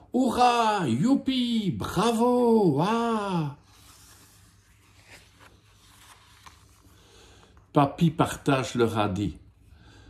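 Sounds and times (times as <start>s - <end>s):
paper page being turned: 3.6s - 7.6s.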